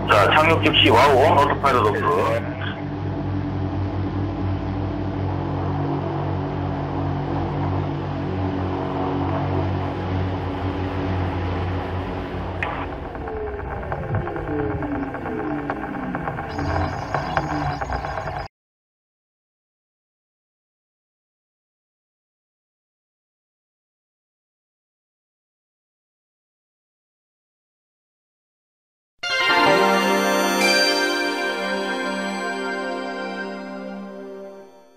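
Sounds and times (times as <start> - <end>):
rotors spinning down: 12.0 - 18.5
electric rotors running: 12.4 - 18.5.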